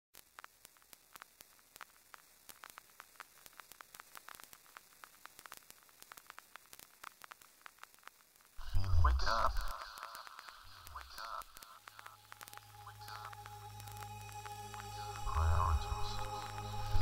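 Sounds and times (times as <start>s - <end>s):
static hiss with crackles: 0.1s - 17.0s.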